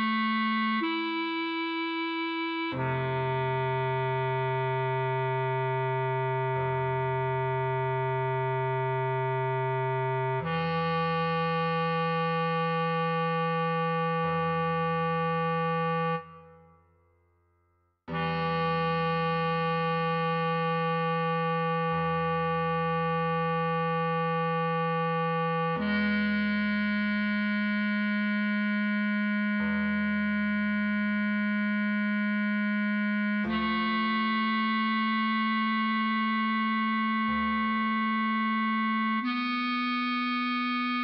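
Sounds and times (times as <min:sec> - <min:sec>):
bass clarinet melody: 0:00.0 - 0:16.8, 0:18.1 - 0:41.0
low accompaniment notes: 0:00.0 - 0:16.9, 0:18.1 - 0:41.0.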